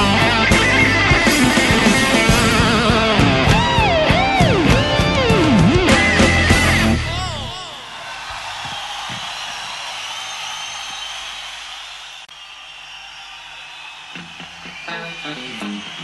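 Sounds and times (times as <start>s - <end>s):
plucked guitar notes: 0.0s - 7.5s
audience applause: 7.2s - 16.0s.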